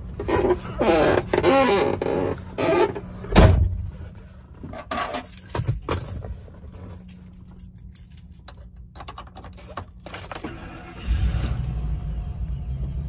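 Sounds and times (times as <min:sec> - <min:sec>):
engine idling low hum: 0:11.0 - 0:13.0.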